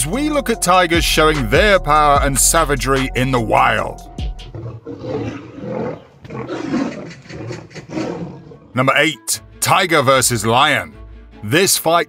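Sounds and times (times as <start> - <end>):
big cats roaring and growling: 4.5 - 8.8.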